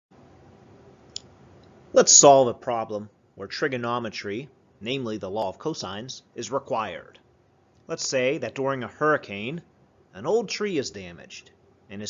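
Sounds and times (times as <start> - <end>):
faint background hum: 0.2 - 12.0.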